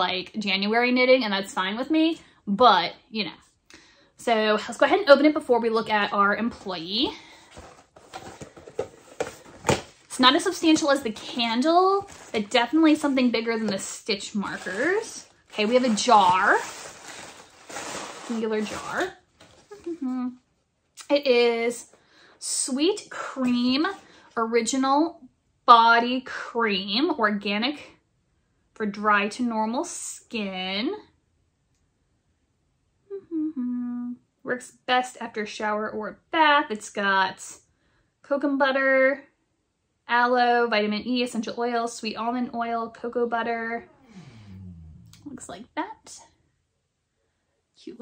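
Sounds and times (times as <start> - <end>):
woman humming: 19.7 - 20.4, 33.1 - 34.2, 43.9 - 45.4.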